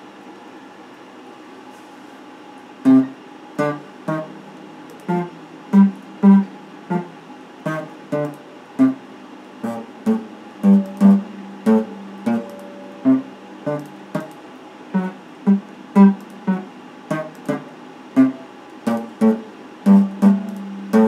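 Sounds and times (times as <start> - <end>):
electric guitar plucked notes: 2.9 - 9.0, 9.6 - 21.0.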